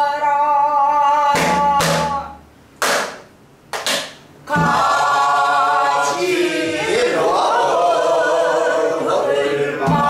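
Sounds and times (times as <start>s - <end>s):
person singing: 0.0s - 2.4s.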